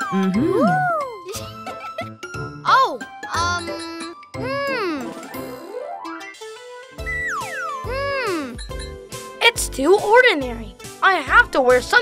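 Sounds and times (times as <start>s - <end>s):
tinkling cartoon music: 0.0s - 10.7s.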